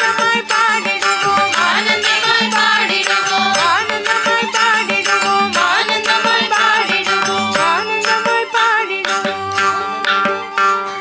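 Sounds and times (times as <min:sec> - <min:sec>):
young woman singing: 0:00.0 - 0:10.5
violin: 0:00.0 - 0:11.0.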